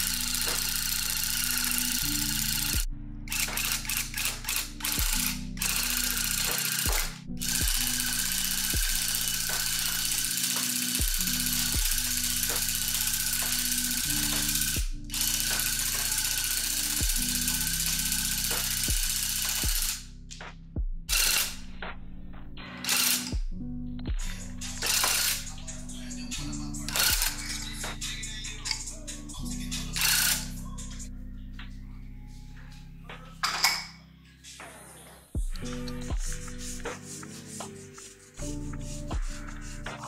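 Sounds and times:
tufting gun rattle and whine: 0.0 - 20.0, 21.1 - 21.6, 24.7 - 25.8, 26.8 - 27.7.

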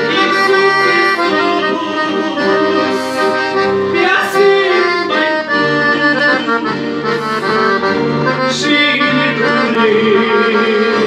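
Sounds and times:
piano accordion playing: 0.0 - 11.0.

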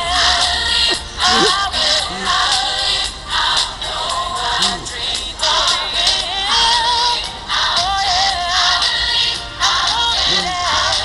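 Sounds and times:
person singing with vibrato: 0.0 - 11.0
recorded song: 0.0 - 11.0.

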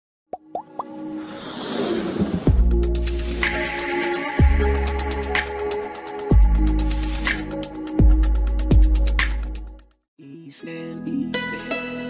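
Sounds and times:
whoosh: 1.2 - 3.6.

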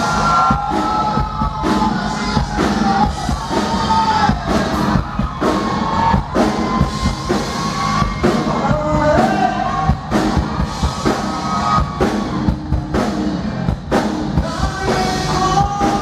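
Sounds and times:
drum kit beat: 0.0 - 16.0
guitar: 0.0 - 16.0
person singing: 14.4 - 16.0.

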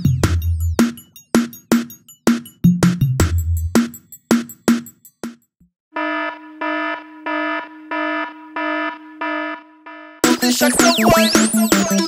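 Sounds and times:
electronic alarm beeps: 6.0 - 12.0.

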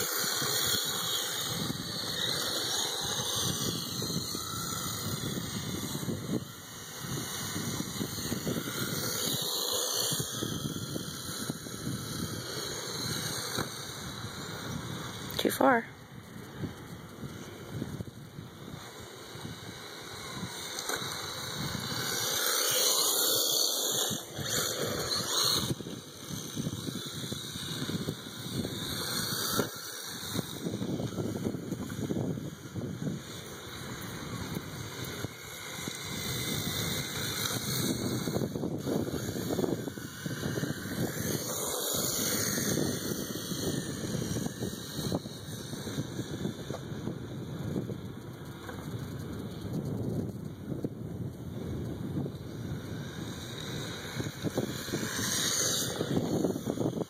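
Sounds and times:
rc car driving on asphalt: 0.0 - 57.0
wind buffeting microphone: 0.0 - 57.0.

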